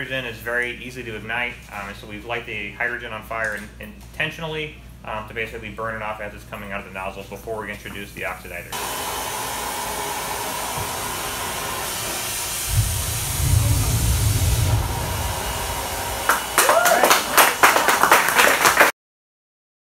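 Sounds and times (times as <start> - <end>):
steady hiss: 10.4 - 18.1
rocket engine rumble: 11.8 - 18.0
people clapping and cheering: 15.6 - 19.0.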